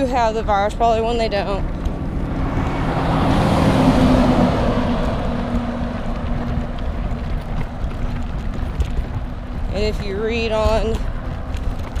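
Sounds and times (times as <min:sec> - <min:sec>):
stroller wheels rolling over dirt: 0:00.0 - 0:12.0
vehicle passing: 0:00.0 - 0:12.0
wind on microphone: 0:00.0 - 0:12.0.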